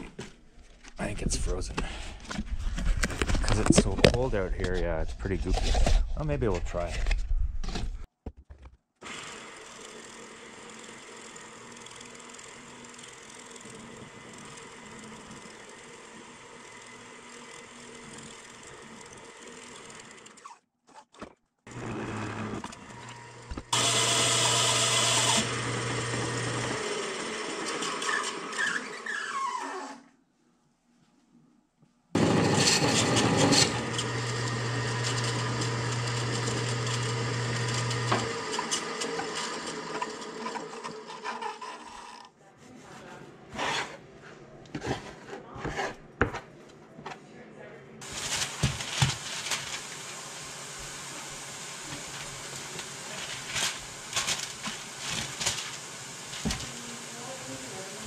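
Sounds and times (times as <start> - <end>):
wood lathe running: 9.0 - 20.6, 21.7 - 30.0, 32.2 - 42.3, 48.0 - 58.0
tool scraping spinning wood: 9.0 - 30.0, 32.2 - 42.4, 43.5 - 44.1, 44.7 - 46.5.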